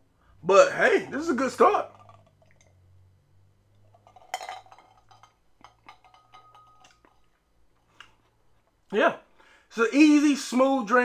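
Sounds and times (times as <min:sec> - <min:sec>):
ice cube clinking in glass: 0:01.8 - 0:02.7, 0:03.8 - 0:07.3
glass ringing: 0:04.0 - 0:07.1.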